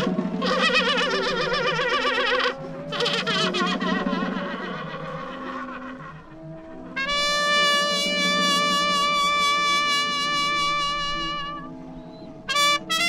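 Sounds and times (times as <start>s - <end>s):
horns and trumpets playing held notes: 0.0s - 13.0s.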